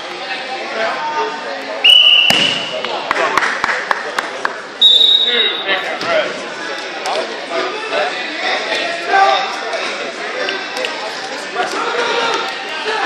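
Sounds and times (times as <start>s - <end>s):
gym chatter: 0.0s - 13.0s
higher-pitched whistle blast: 1.8s - 2.7s
referee's whistle blast: 1.8s - 2.8s, 4.8s - 5.7s.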